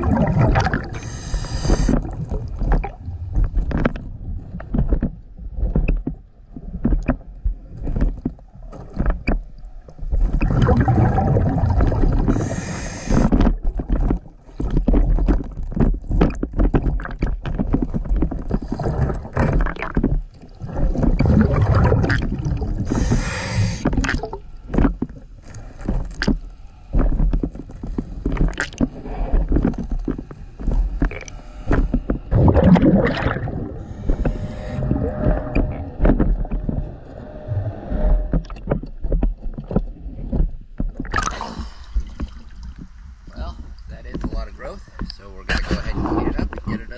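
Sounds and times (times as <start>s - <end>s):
rush of exhaled bubbles: 0.0s - 3.6s, 10.2s - 15.3s, 18.4s - 24.5s, 31.0s - 39.0s, 41.0s - 42.5s, 45.5s - 46.7s
sharp clicks underwater: 0.0s - 37.2s, 37.8s - 43.0s
diver breathing through regulator: 0.6s - 2.4s, 11.1s - 13.4s, 21.6s - 24.7s, 28.8s - 38.6s, 41.2s - 42.4s.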